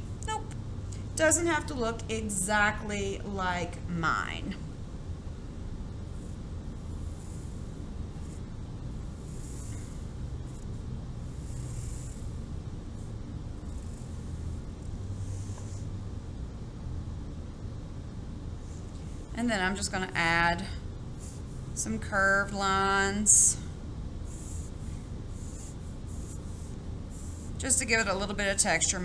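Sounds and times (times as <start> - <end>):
low background rumble: 0.0 - 29.0.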